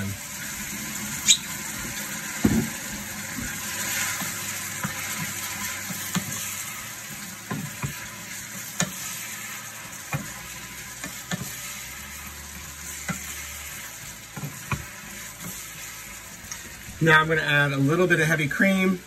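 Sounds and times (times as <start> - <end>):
fruit sizzling in a skillet: 0.0 - 19.0.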